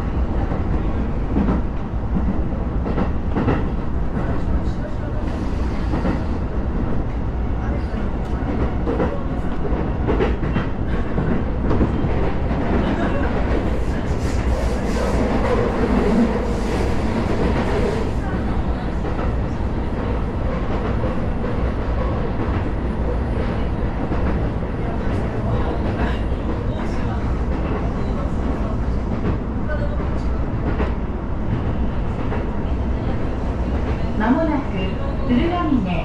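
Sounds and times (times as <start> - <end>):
train wheels rumbling on rail: 0.0 - 36.0
rail joint clacks: 0.4 - 35.8.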